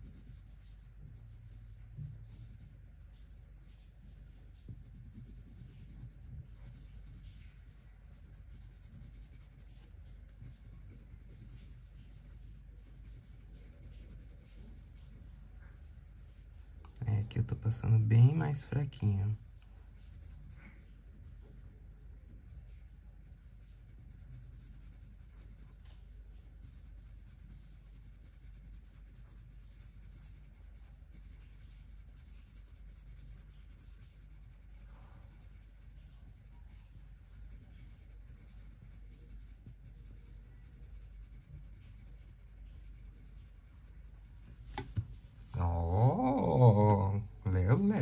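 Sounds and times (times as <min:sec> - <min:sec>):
colored pencil shading on paper: 0:00.0 - 0:48.0.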